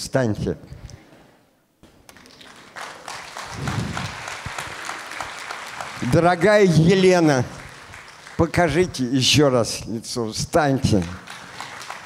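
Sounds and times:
audience applause: 2.1s - 9.1s, 11.0s - 12.0s.

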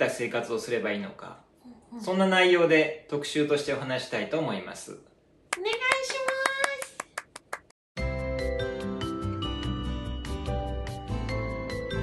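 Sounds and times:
sharp hand claps: 5.5s - 7.8s.

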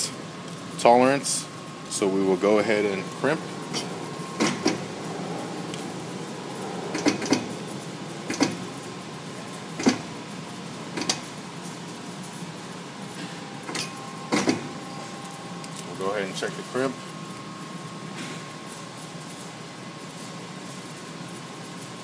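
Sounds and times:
hose crimper machine running: 0.0s - 16.9s
sharp metallic clicks and knocks: 8.3s - 8.6s.

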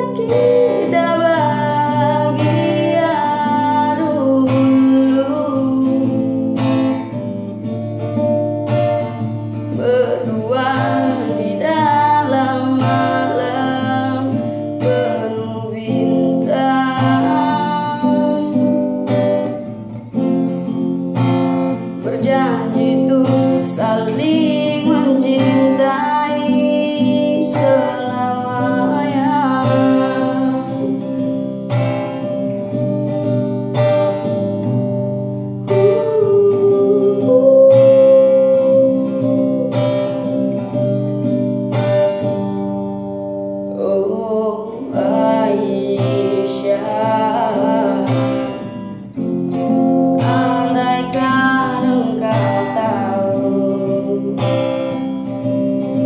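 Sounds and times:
person singing slow song: 0.0s - 7.1s, 8.8s - 19.6s, 21.7s - 31.5s, 35.5s - 41.1s, 43.6s - 56.0s
strummed acoustic guitar: 0.0s - 56.0s.

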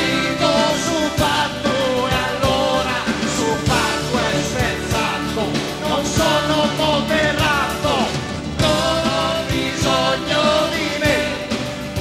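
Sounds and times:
drums: 0.0s - 12.0s
electric guitars: 0.0s - 12.0s
voices singing: 0.0s - 12.0s.

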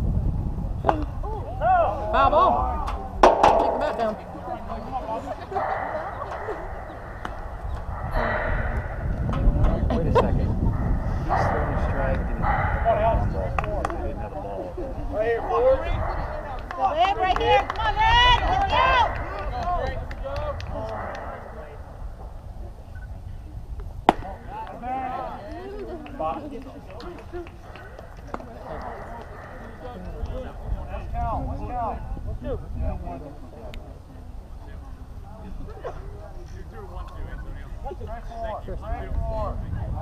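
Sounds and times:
wind on microphone: 0.0s - 40.0s
people calling out: 1.2s - 13.4s, 15.0s - 22.2s.

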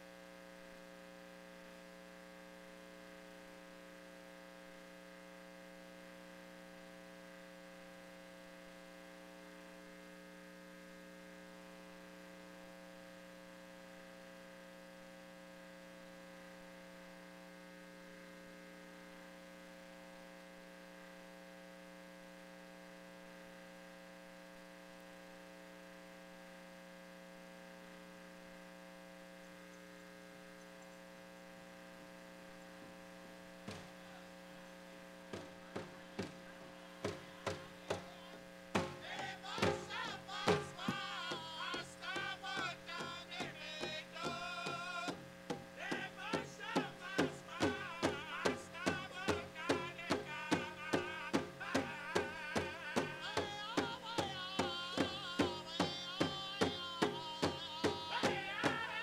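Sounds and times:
electrical mains hum: 0.0s - 59.0s
powwow drum strikes: 35.3s - 59.0s.

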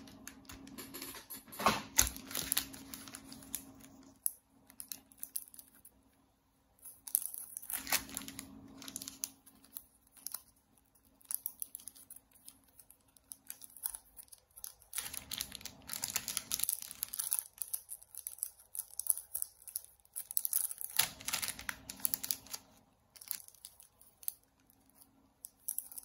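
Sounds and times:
plastic sleeves crinkling: 1.8s - 6.0s, 6.8s - 26.0s.

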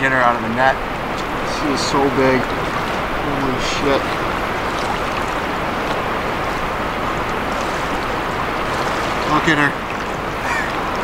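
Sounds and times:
river current rushing: 0.0s - 11.0s.

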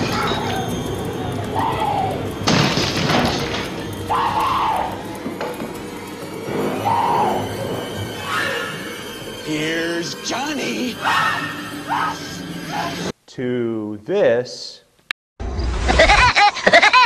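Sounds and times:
woman screaming: 1.5s - 2.2s, 4.1s - 5.0s.

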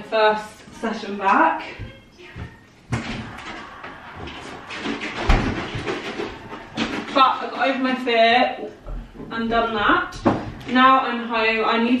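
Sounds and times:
kitchen items rustling and clattering: 0.6s - 11.0s.

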